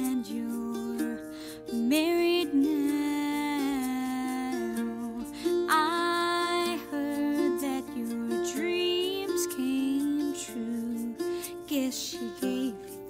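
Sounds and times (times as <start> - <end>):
acoustic guitar: 0.0 - 13.0
picked mandolin: 0.0 - 13.0
woman singing a slow ballad: 0.0 - 13.0.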